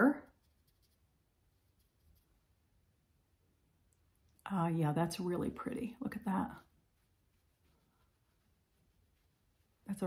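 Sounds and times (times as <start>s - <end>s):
person speaking: 0.0s - 0.4s.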